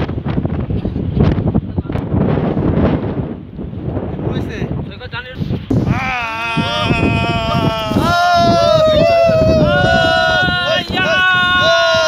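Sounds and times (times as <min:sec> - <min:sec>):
people holding long calls: 0:05.7 - 0:12.0.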